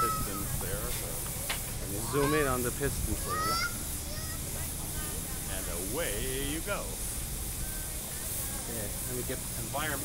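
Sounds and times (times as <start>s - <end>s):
locomotive low rumble: 0.0s - 10.0s
steam hissing: 0.0s - 10.0s.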